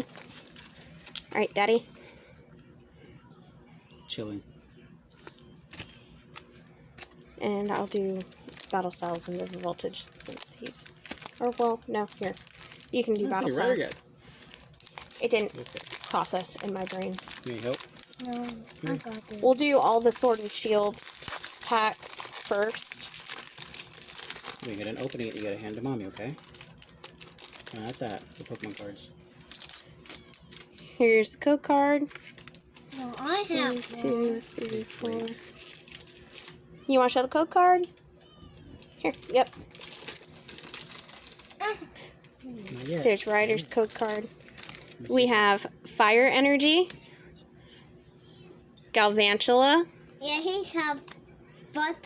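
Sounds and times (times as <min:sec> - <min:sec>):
foil wrappers crinkling: 0:00.0 - 0:02.3, 0:05.1 - 0:46.9.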